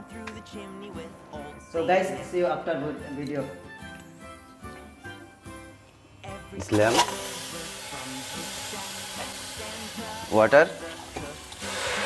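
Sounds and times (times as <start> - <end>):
meat sizzling in a saucepan: 6.9 - 12.0.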